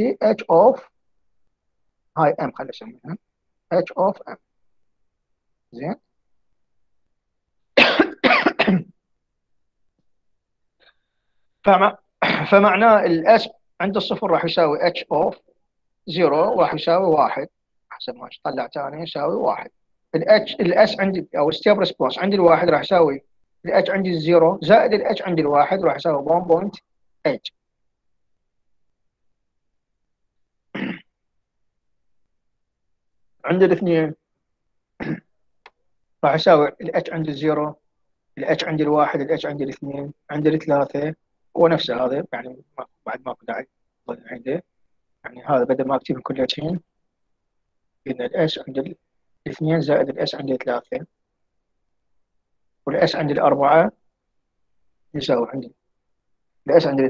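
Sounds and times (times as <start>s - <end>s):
person speaking: 0.0s - 0.9s, 2.2s - 4.4s, 5.7s - 6.0s, 11.6s - 15.4s, 16.1s - 27.6s, 33.4s - 34.2s, 36.2s - 37.8s, 38.4s - 44.6s, 45.2s - 46.8s, 48.1s - 51.1s, 52.9s - 54.0s, 55.1s - 55.8s, 56.6s - 57.0s
man clearing throat: 7.8s - 8.9s, 30.8s - 31.1s, 35.0s - 35.3s
man coughing: 7.8s - 8.9s, 30.8s - 31.1s, 35.0s - 35.3s.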